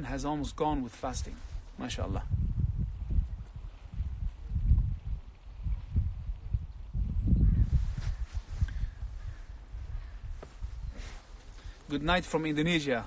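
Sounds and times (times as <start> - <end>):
faint outdoor hiss: 0.0 - 13.0
wind buffeting microphone: 0.0 - 13.0.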